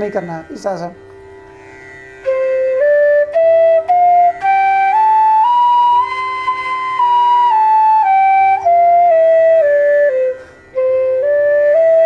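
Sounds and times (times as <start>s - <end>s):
bamboo flute playing scale: 2.2s - 12.0s.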